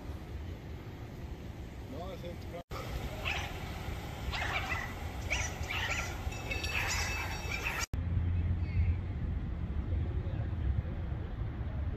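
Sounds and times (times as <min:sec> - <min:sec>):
low street rumble: 0:00.0 - 0:11.9.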